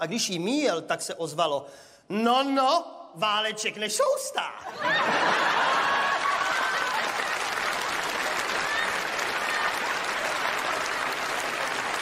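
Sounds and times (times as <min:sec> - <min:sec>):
audience laughter: 0:04.7 - 0:07.0
audience applauding: 0:04.9 - 0:12.0.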